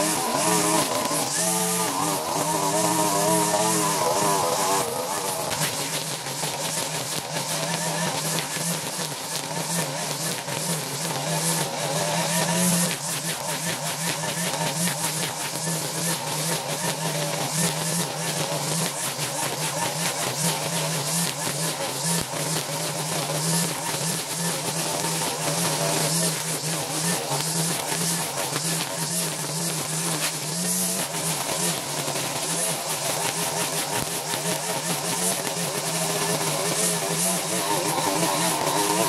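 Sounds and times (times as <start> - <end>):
string trimmer engine running: 0.0 - 39.0
trimmer line slashing grass: 0.0 - 39.0.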